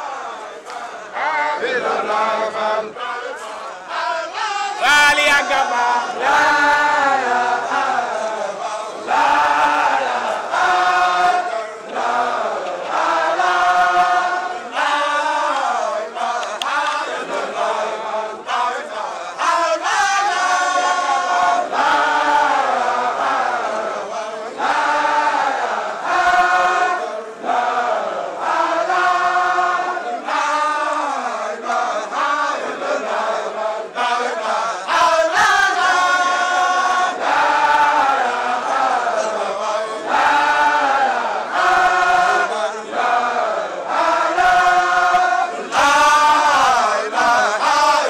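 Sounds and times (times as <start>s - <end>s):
men chanting in chorus: 0.0s - 48.0s.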